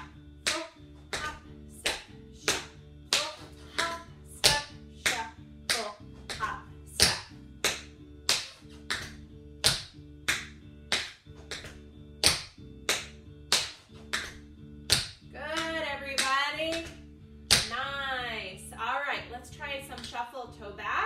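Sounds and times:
quiet background music: 0.0s - 21.0s.

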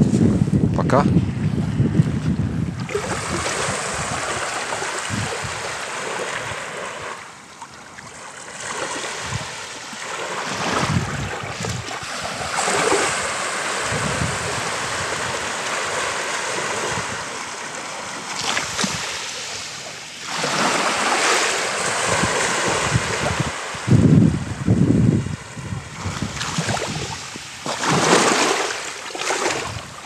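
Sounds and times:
wind buffeting microphone: 0.0s - 7.2s, 8.1s - 30.0s
small waves breaking on sand: 2.8s - 30.0s.

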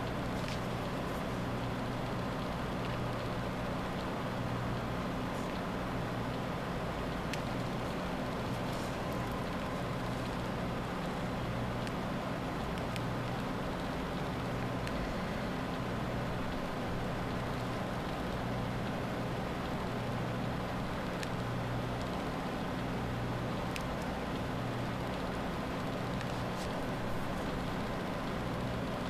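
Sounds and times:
electrical hum and hiss: 0.0s - 29.0s.

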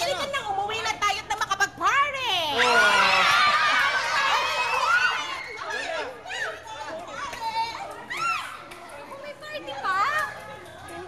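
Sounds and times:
children and adults cheering: 2.5s - 9.4s.

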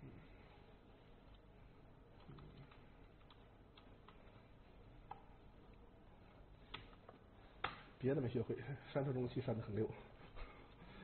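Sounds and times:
keyboard and mouse clicks: 2.2s - 4.3s.

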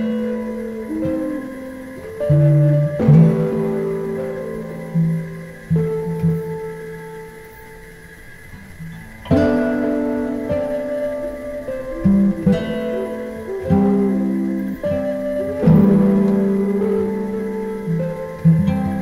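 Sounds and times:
plucked string music: 0.0s - 19.0s.

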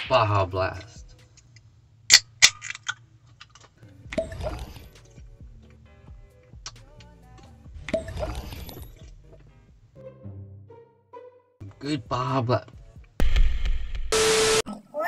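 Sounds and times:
quiet background music: 0.0s - 13.3s.

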